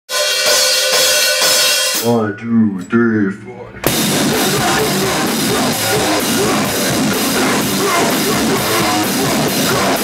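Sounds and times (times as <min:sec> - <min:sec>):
drum kit cymbals crashing: 0:00.1 - 0:02.1, 0:03.8 - 0:10.0.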